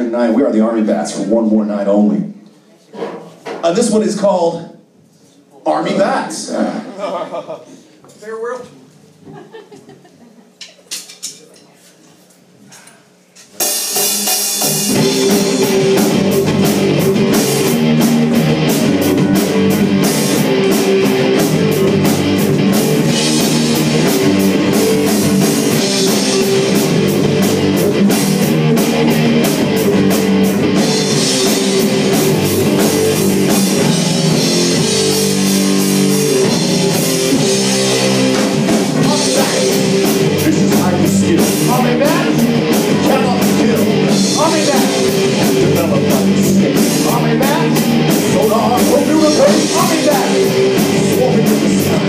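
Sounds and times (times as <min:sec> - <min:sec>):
rock band playing: 0:13.6 - 0:52.0.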